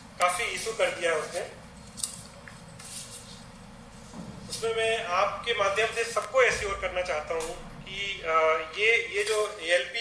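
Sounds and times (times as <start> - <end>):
man speaking: 0.2 - 1.6, 4.5 - 10.0.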